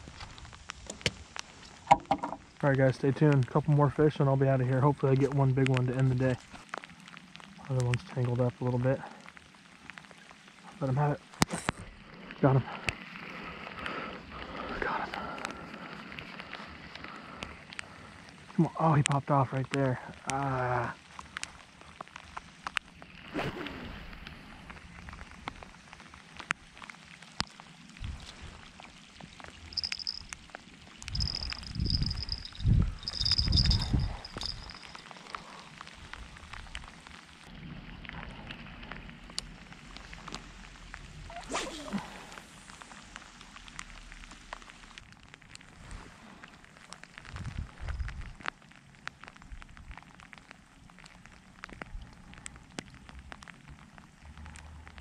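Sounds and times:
rain pattering on water: 0:00.0 - 0:55.0
raindrops ticking on camera: 0:00.0 - 0:55.0.

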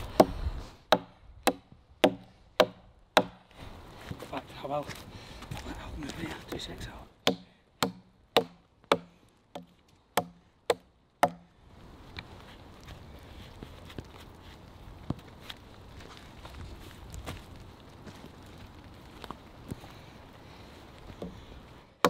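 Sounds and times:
knife chopping into log: 0:00.9 - 0:03.4, 0:06.5 - 0:11.4.

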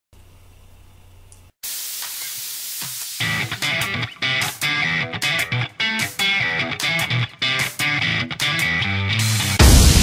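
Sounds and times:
guitar-led intro music: 0:03.2 - 0:10.0.

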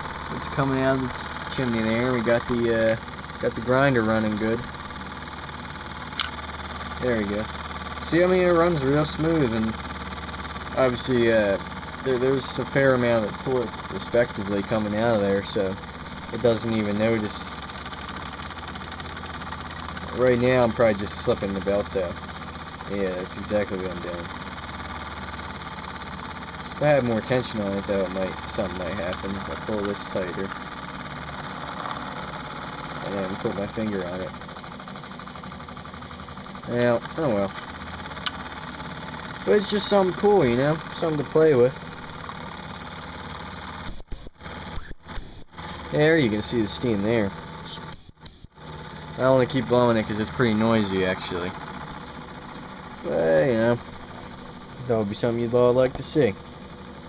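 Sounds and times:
grinder wheel: 0:00.0 - 0:57.0
steam engine running fast: 0:00.0 - 0:57.0.

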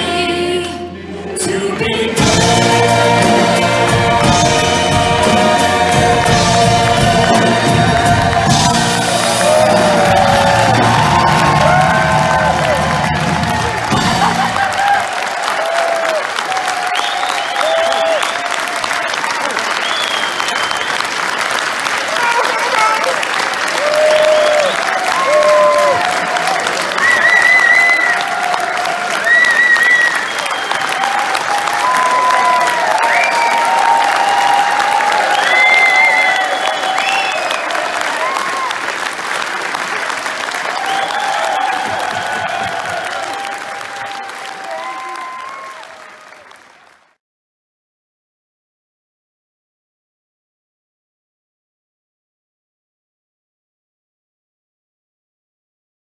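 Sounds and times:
audience applauding: 0:02.2 - 0:47.2
cheers and shouts: 0:04.0 - 0:46.9.

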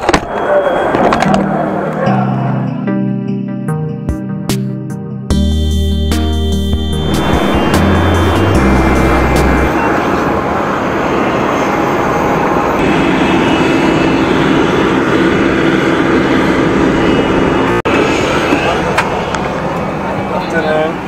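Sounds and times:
guitar music: 0:01.4 - 0:09.8
aircraft engines running: 0:05.3 - 0:21.0.

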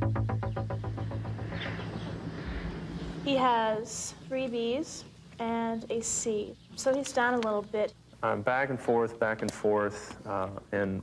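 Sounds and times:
synthesizer music with pulsing beat: 0:00.0 - 0:03.3
steady low hum: 0:00.0 - 0:11.0.

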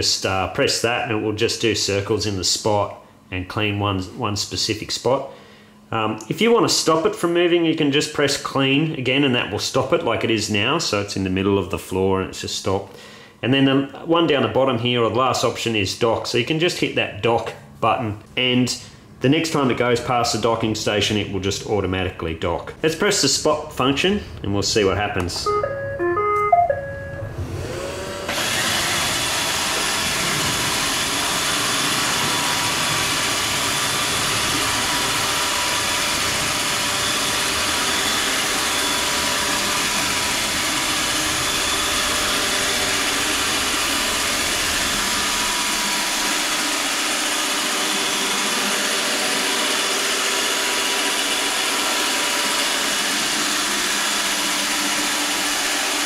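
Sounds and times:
short electronic tones: 0:25.4 - 0:27.4
robot vacuum motor running: 0:27.4 - 0:56.0.

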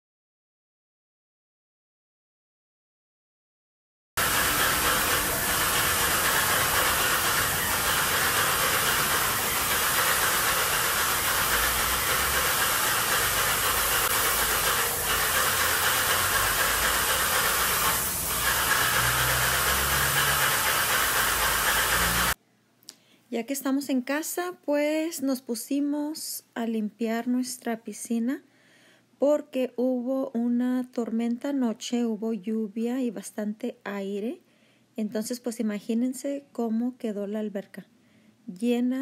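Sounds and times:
paint sprayer hissing: 0:04.2 - 0:22.4.

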